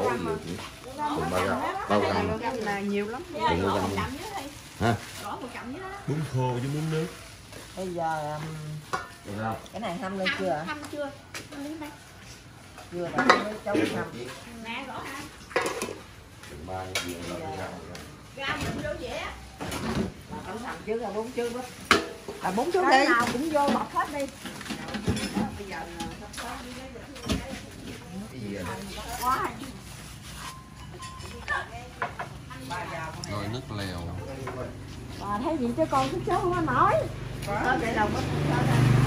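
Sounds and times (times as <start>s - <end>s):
pot lids and dishes clattering: 13.1s - 14.0s, 15.5s - 16.0s, 21.8s - 22.4s, 23.2s - 26.3s.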